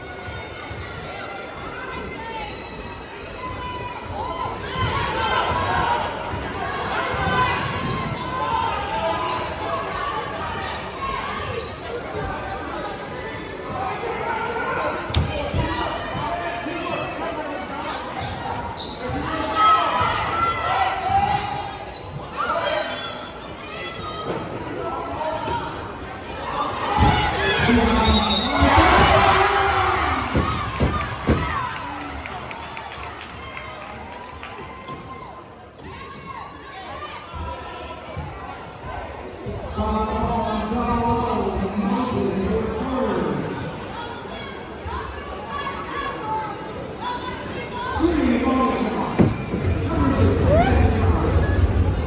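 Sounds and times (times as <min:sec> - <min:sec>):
overlapping voices in a hall: 0:27.5 - 0:35.7.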